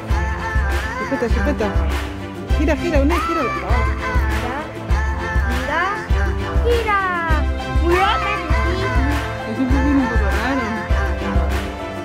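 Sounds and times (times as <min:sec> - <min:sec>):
music with bass beat: 0:00.0 - 0:12.0.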